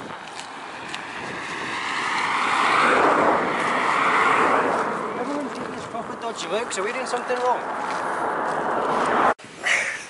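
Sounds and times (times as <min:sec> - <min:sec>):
car passing close by: 0:00.5 - 0:09.4.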